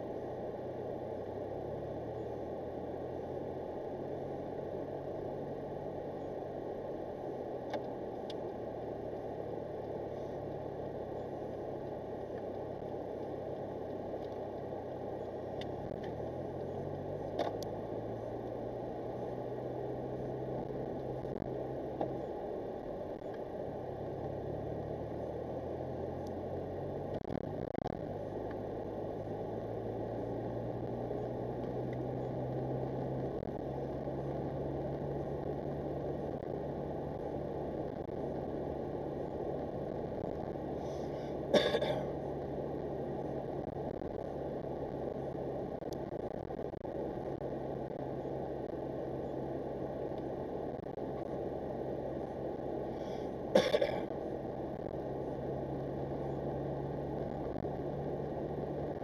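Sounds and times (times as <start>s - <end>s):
car engine: 0.0s - 59.0s
road noise inside car: 0.0s - 59.0s.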